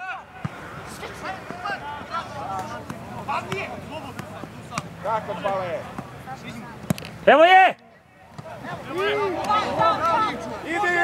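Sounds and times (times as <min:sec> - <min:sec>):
people shouting: 0:08.6 - 0:11.0.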